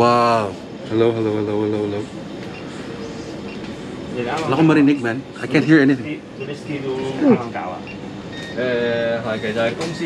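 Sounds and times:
busy indoor shop background noise: 0.0 - 10.0.

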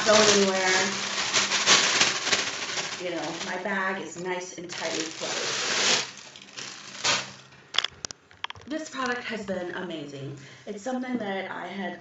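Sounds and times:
plastic bag crinkling: 0.0 - 9.2.

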